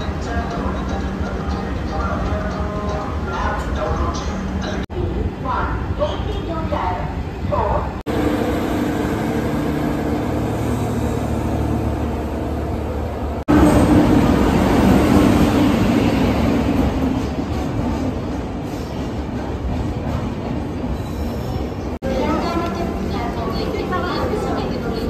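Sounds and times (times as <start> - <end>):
electric locomotive and coaches passing: 0.0 - 25.0
freight train rumbling past: 0.0 - 25.0.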